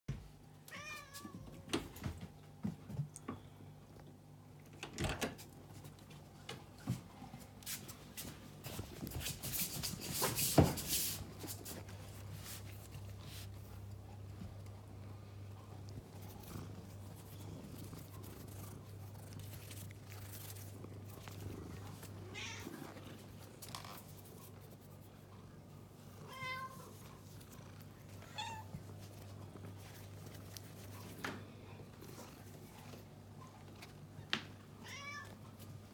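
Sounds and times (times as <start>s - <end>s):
cat meowing: 0.7s - 1.4s, 22.3s - 22.7s, 34.8s - 35.4s.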